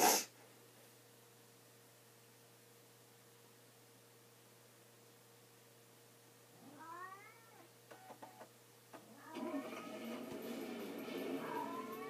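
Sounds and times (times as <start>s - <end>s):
cat meowing: 6.6s - 7.7s.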